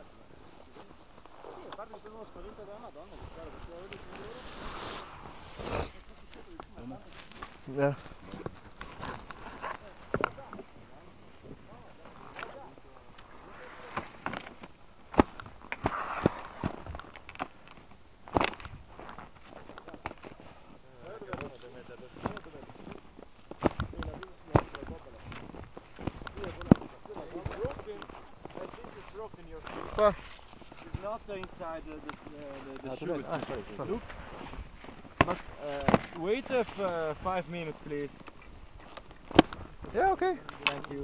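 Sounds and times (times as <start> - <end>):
faint muffled voices: 0.0 - 14.8.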